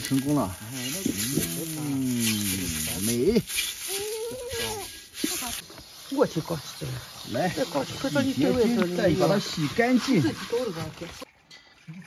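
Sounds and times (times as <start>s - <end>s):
pork skin sizzling on hot wok: 0.0s - 11.3s.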